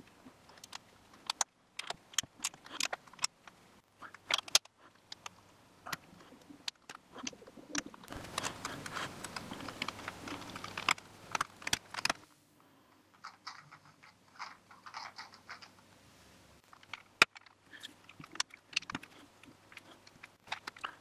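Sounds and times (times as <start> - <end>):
plastic pieces clicking: 0.5 - 12.3, 13.1 - 15.8, 16.7 - 21.0.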